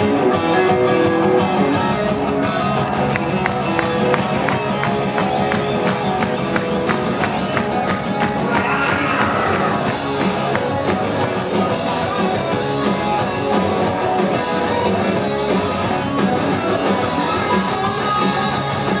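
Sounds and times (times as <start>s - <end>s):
amplified electric guitars: 0.0s - 19.0s
live rock band through speakers: 0.0s - 19.0s.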